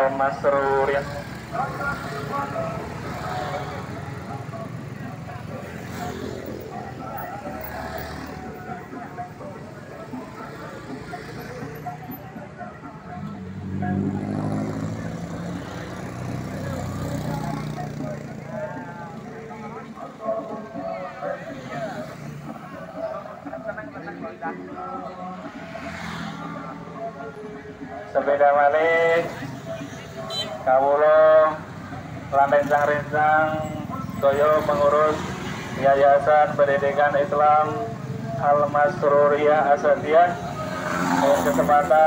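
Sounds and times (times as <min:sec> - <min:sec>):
faint voices: 0:00.0 - 0:42.0
road traffic noise: 0:00.0 - 0:42.0
scooters and motorcycles passing: 0:00.0 - 0:42.0.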